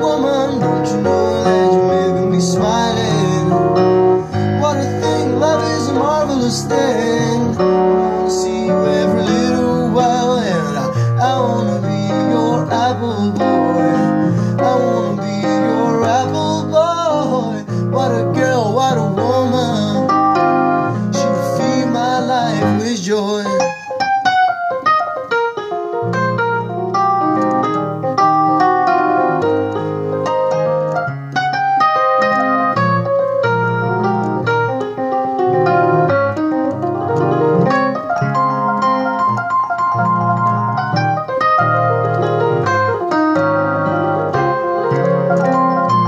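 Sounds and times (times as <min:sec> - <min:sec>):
person singing with vibrato: 0:00.0 - 0:24.0
electric keyboard piano: 0:00.0 - 0:46.0.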